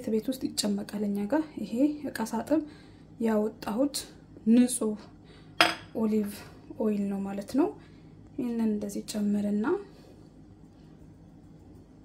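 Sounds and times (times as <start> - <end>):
woman's voice: 0.0 - 5.1, 5.9 - 7.8, 8.4 - 10.0.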